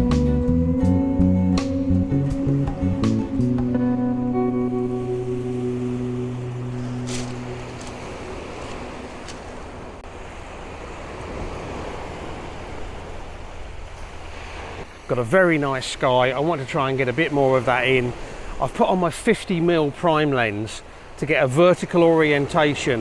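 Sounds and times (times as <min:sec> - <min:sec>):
acoustic guitar music: 0:00.0 - 0:10.0
waves breaking on shingle: 0:06.7 - 0:10.0.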